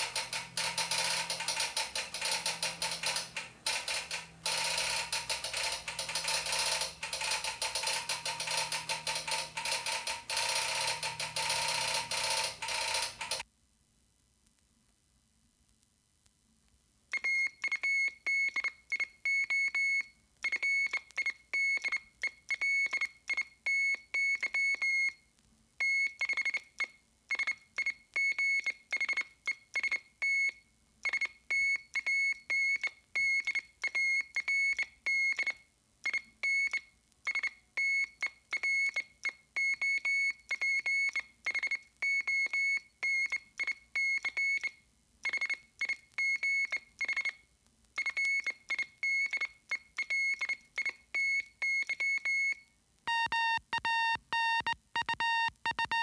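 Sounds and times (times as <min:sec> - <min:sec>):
morse code tone: 0:00.0 - 0:13.4, 0:51.2 - 0:56.0.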